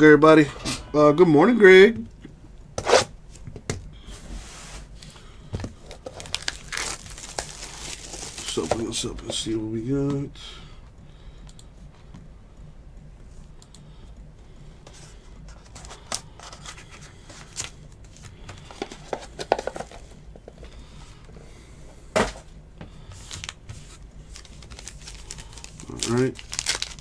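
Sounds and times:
foil wrappers crinkling: 5.6s - 9.1s, 23.1s - 27.0s
foil wrapper snap: 6.1s - 8.6s, 24.4s - 27.0s.

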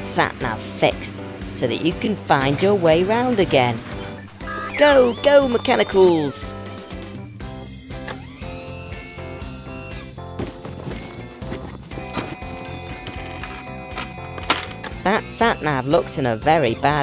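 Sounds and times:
cartoon background music: 0.0s - 17.0s.

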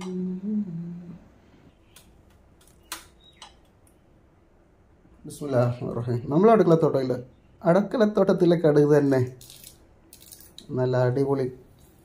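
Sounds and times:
person humming: 0.0s - 1.3s.

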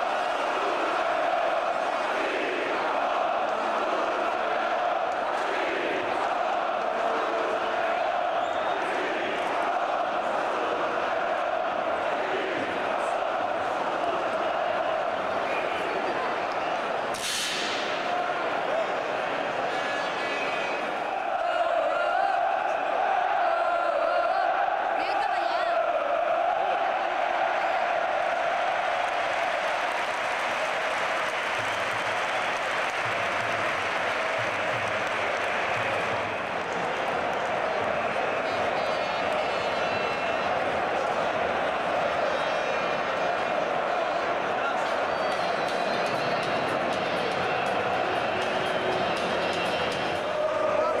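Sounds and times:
stadium crowd singing and chanting: 0.0s - 51.0s.

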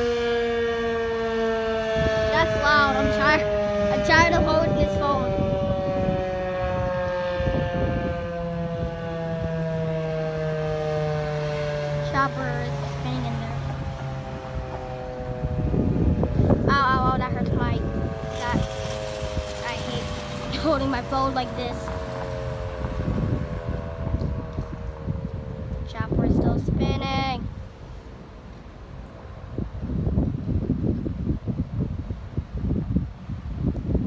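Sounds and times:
siren tone falling in pitch: 0.0s - 26.6s
wind rumble on microphone: 0.0s - 34.0s.

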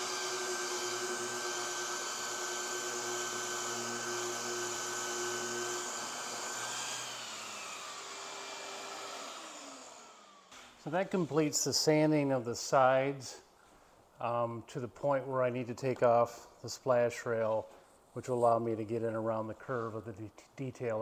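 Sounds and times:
orbital sander on wood: 0.0s - 10.5s
dust extraction vacuum: 0.0s - 11.6s.

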